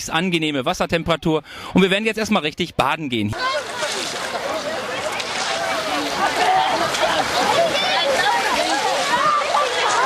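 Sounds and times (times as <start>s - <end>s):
water splashing: 3.3s - 10.0s
children shouting: 3.4s - 10.0s.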